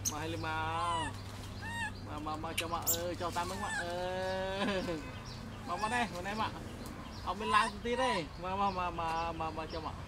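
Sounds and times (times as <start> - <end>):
baby monkey crying: 0.0 - 6.6, 7.2 - 8.6.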